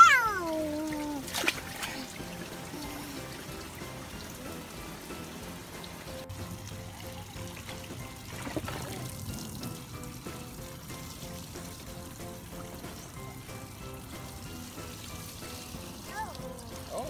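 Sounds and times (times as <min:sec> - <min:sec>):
toddler squealing: 0:00.0 - 0:01.3
hose water trickling into pool: 0:00.0 - 0:17.0.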